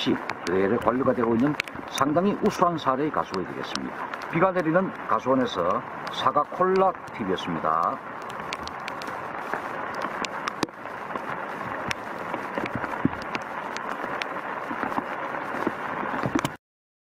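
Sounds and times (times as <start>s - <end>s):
rain falling on leaves: 0.0s - 16.6s.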